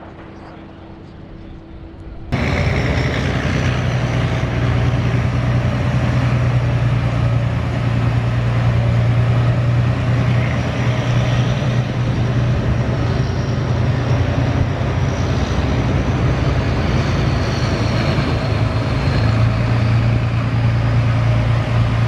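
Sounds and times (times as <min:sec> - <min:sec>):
large engine running: 0:00.0 - 0:22.0.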